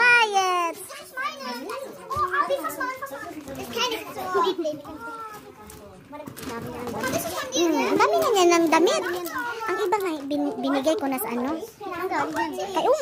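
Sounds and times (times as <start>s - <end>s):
children talking and calling: 0.0s - 13.0s.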